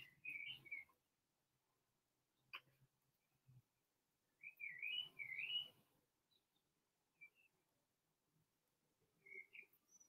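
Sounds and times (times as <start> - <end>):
bird chirping: 0.0 - 1.1, 4.2 - 7.8, 9.0 - 10.0.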